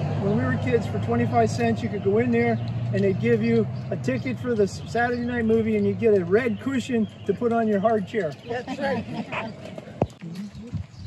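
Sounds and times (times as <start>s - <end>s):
people talking quietly: 0.2s - 10.9s.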